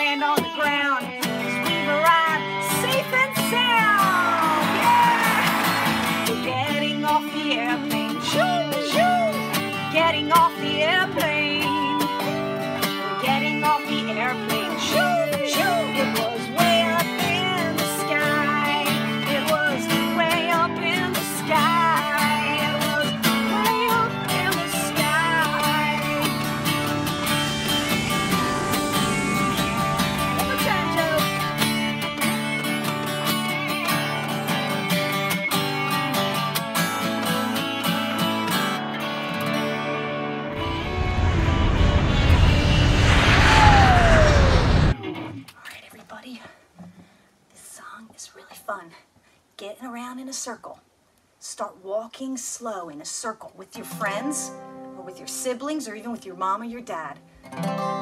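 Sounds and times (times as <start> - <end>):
acoustic guitar strumming chords: 0.0 - 41.2
electric guitar lead lines: 0.0 - 45.5
loud low rumbling noise: 24.9 - 33.0, 40.5 - 45.0.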